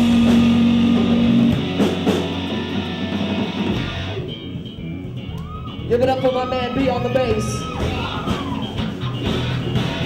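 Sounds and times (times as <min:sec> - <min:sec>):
drums: 0:00.0 - 0:10.0
electric guitar: 0:00.0 - 0:10.0
live rock band playing: 0:00.0 - 0:10.0.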